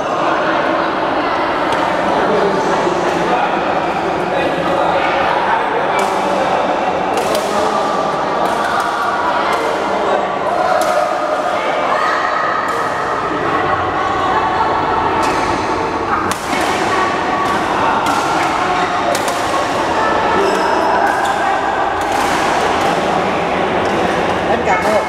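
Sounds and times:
hubbub of many voices: 0:00.0 - 0:25.0
rackets hitting shuttlecock: 0:06.0 - 0:06.2, 0:07.1 - 0:07.7, 0:15.2 - 0:23.2.

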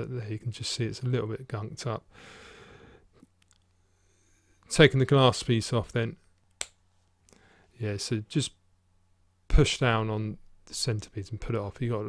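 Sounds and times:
soft breath out: 0:02.1 - 0:03.2, 0:03.8 - 0:04.6, 0:07.3 - 0:07.7.

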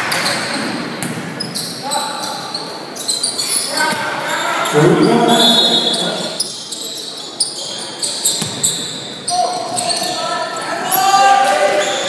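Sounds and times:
basketball bouncing on court: 0:01.0 - 0:01.3, 0:08.3 - 0:08.8
spectators' voices: 0:04.2 - 0:06.5.

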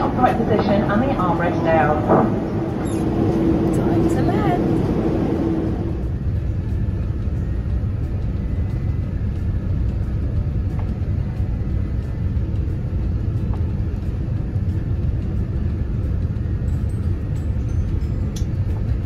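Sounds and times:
airliner cabin engine rumble: 0:00.0 - 0:19.0.

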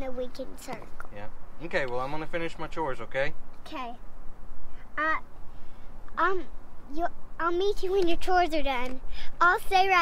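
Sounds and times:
young girl saying uh: 0:03.6 - 0:04.0, 0:04.8 - 0:05.3, 0:06.2 - 0:10.0.

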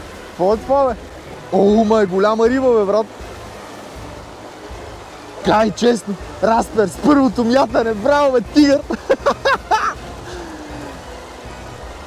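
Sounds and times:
river rushing over rocks: 0:00.0 - 0:12.0.

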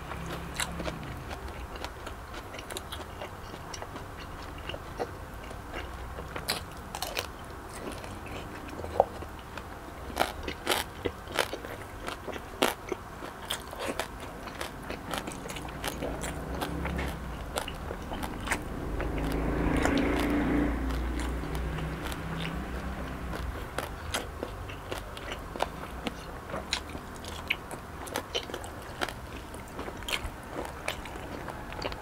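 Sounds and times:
chewing crispy pork skin: 0:00.0 - 0:32.0.

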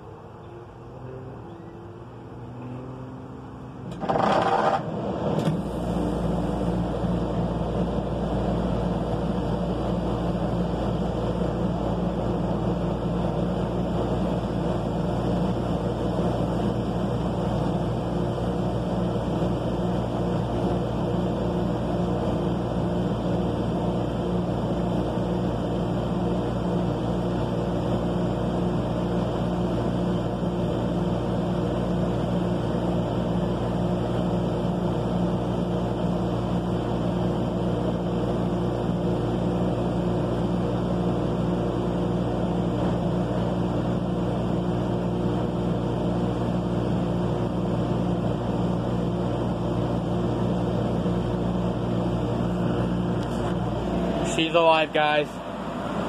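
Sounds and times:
air conditioner startup burst: 0:03.8 - 0:56.0
air conditioner humming: 0:46.5 - 0:56.0.

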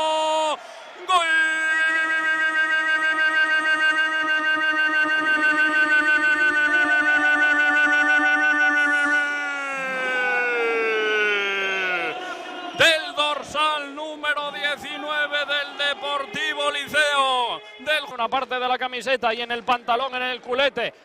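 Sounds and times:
commentator shouting goal call: 0:00.0 - 0:20.2.

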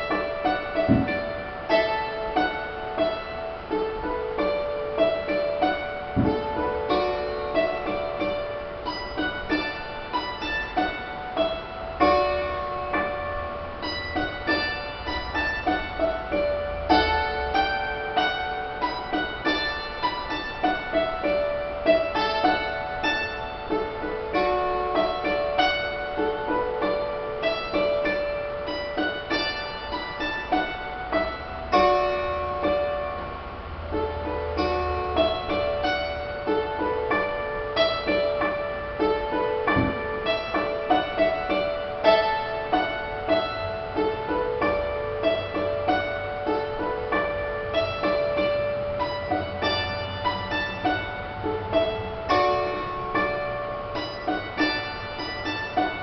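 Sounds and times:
dulcimer playing a tune: 0:00.0 - 0:56.0.

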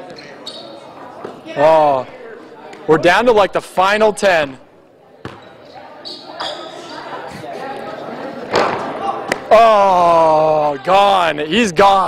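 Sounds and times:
faint voices: 0:04.9 - 0:11.3.

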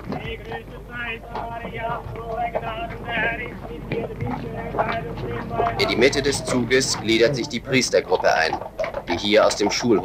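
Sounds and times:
murmur of voices: 0:00.0 - 0:09.8
horse hooves clip-clopping on pavement: 0:00.0 - 0:10.0.

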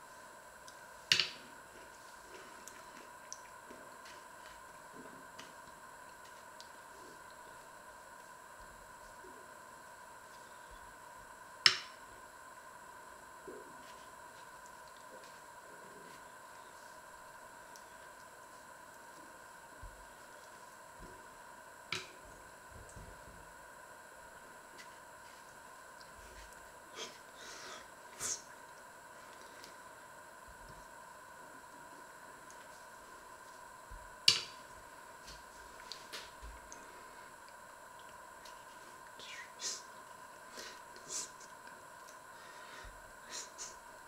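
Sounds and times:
faint steady hum: 0:00.0 - 0:44.0
faint steady whine: 0:00.0 - 0:44.0.

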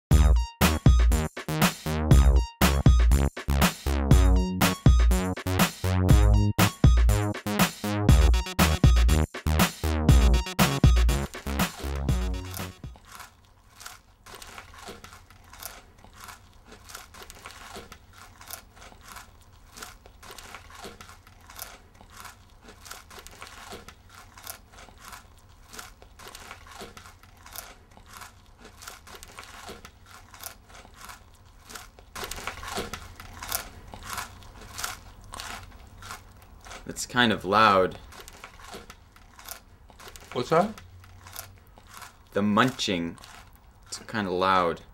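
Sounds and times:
person munching crunchy food: 0:00.7 - 0:44.9.

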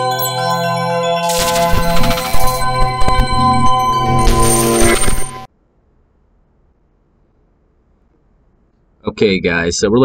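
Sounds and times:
chiming logo music: 0:00.0 - 0:05.5.

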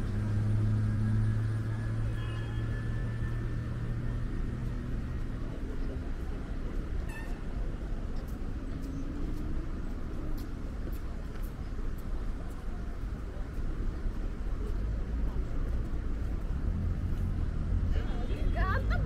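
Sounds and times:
road traffic rumble: 0:00.0 - 0:19.0.

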